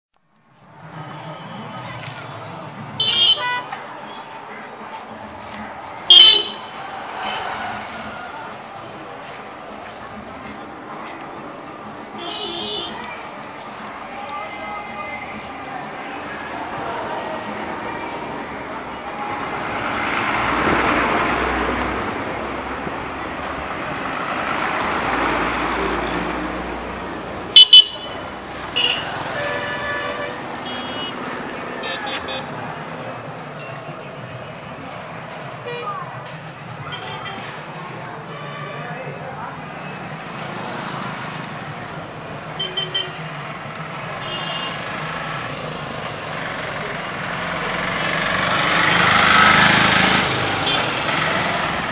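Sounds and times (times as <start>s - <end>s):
engine and road noise: 0.1s - 51.9s
loud vehicle horn toot: 3.0s - 3.7s, 6.1s - 6.7s, 27.5s - 28.2s, 44.2s - 44.8s
loud horn toots: 6.1s - 6.7s.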